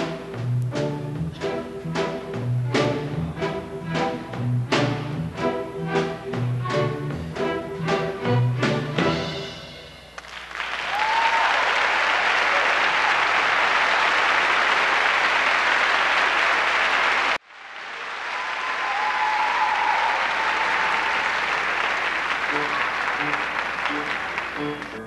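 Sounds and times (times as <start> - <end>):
audience applauding: 10.2 - 25.0
brief cheers: 10.6 - 13.5, 17.9 - 21.6.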